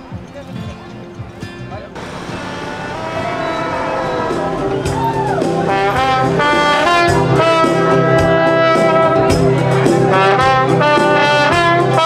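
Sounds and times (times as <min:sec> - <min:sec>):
music with sustained note: 0:02.0 - 0:09.2.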